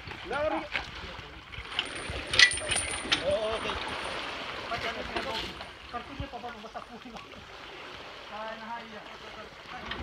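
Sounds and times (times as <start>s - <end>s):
metal clinks of trailer winch: 1.7s - 4.1s.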